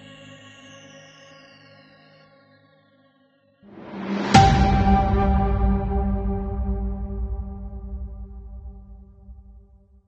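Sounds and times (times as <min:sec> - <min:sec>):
low synthesizer drone: 0:03.8 - 0:09.8.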